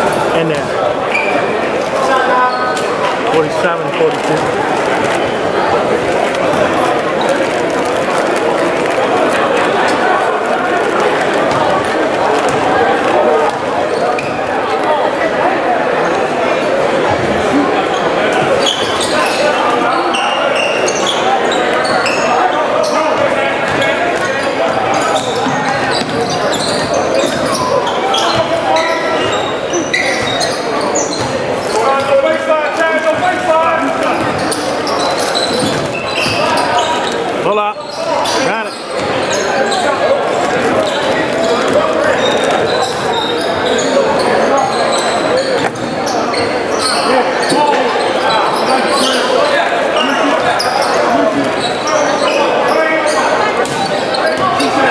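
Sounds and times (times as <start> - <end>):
players and spectators talking: 0.0 - 54.9.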